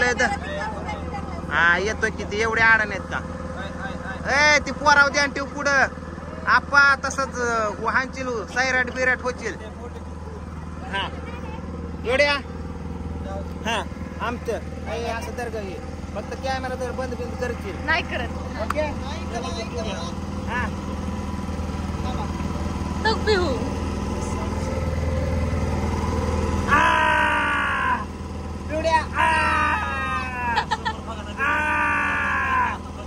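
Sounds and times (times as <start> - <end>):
boat engine drone: 0.0 - 33.0
loud drawn-out vocal cry: 26.6 - 28.2, 29.0 - 33.0.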